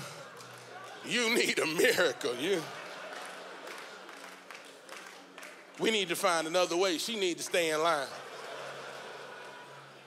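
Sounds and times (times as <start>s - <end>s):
audience noise in a hall: 0.0s - 10.0s.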